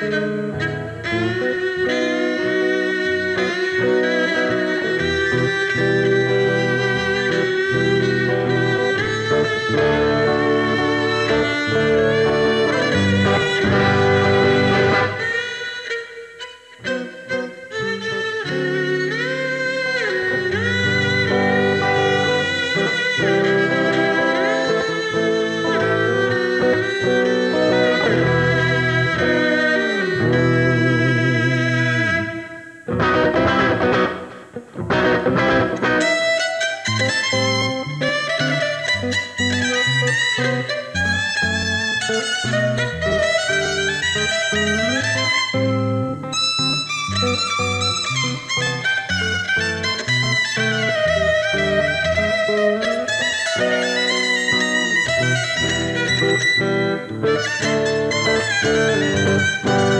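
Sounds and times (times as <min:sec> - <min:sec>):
electric guitar: 0:00.0 - 0:59.9
violin melody: 0:00.0 - 0:59.9.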